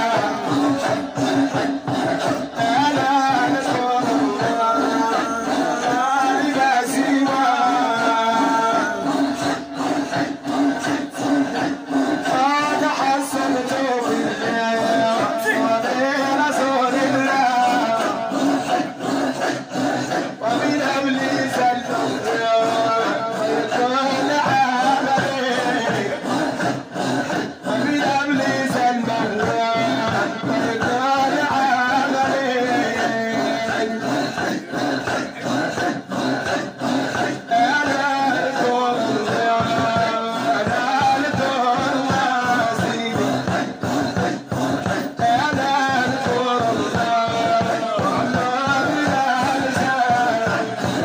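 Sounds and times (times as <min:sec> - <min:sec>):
men chanting together: 0:00.0 - 0:51.0.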